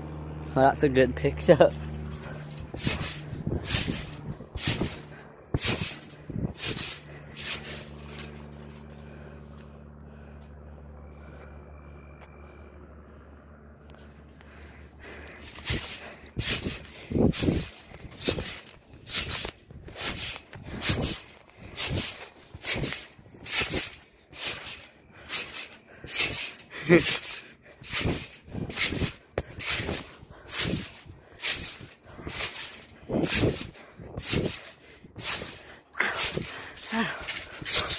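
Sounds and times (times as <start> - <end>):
steady low hum: 0.0 - 37.9
heavy rapid breathing: 1.8 - 37.9.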